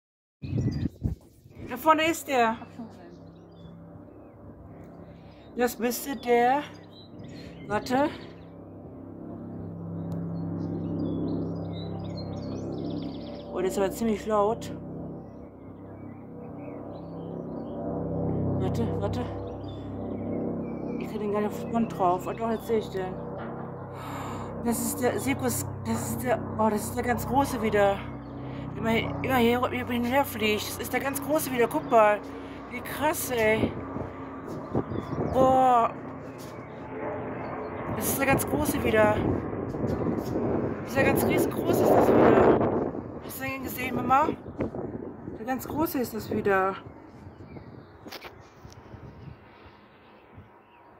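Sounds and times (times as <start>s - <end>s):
helicopter flying overhead: 0.4s - 50.9s.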